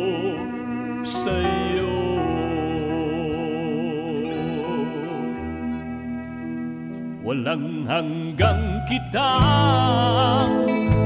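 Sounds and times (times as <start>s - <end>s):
person singing: 0.0s - 6.2s, 7.1s - 11.0s
sustained chordal accompaniment: 0.0s - 11.0s.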